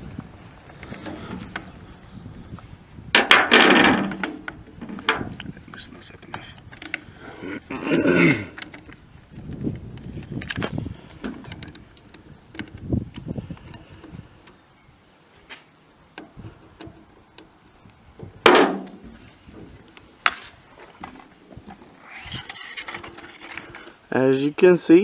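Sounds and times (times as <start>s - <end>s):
metallic clicks and knocks of rifle: 9.9s - 13.9s.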